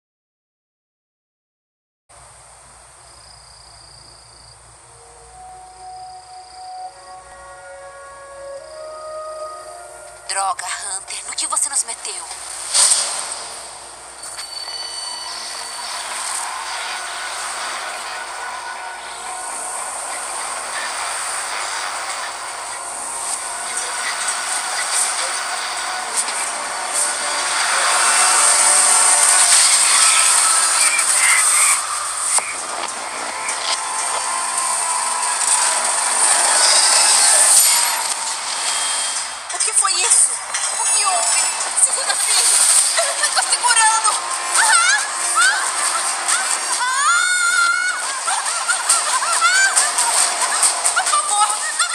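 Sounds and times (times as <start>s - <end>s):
rushing noise: 2.2s - 51.9s
metal tower screeching and grinding: 11.9s - 51.9s.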